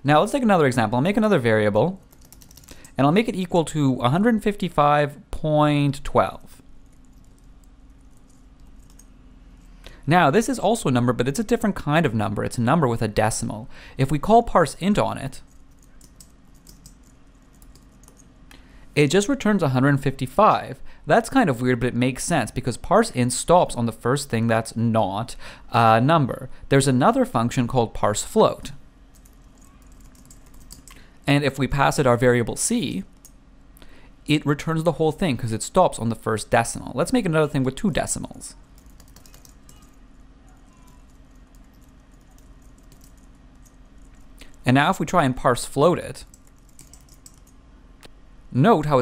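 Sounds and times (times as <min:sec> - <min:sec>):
low steady hum: 0:00.0 - 0:49.0
typing on computer keyboard: 0:02.1 - 0:03.0, 0:06.8 - 0:09.1, 0:15.5 - 0:18.3, 0:29.1 - 0:31.0, 0:38.8 - 0:40.0, 0:40.8 - 0:44.2, 0:46.3 - 0:47.6.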